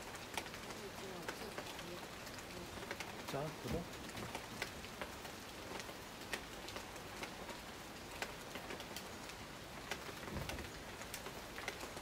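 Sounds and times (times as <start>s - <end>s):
raindrops ticking: 0.0s - 12.0s
steady rain hissing: 0.0s - 12.0s.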